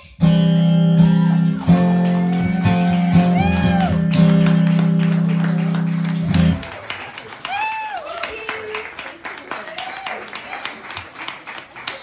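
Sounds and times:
audience clapping: 1.4 - 12.0.

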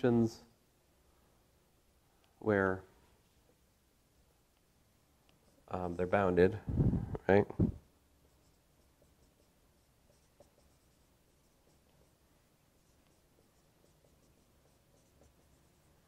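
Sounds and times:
marker squeaking on whiteboard: 8.2 - 16.0.

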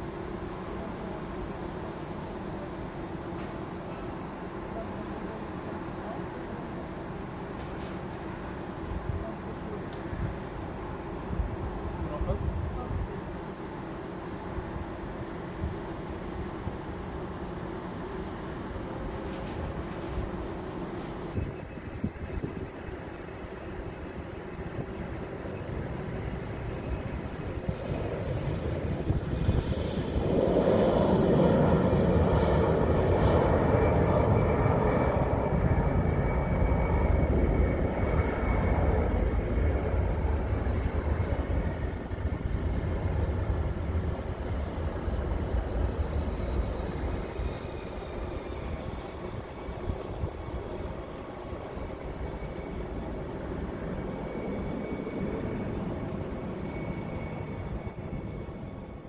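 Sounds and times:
jet engine roar: 0.0 - 59.0.

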